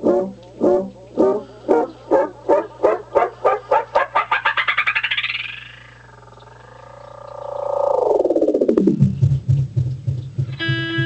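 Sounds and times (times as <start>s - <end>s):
guitar delay pedal feedback: 10.5s - 11.0s.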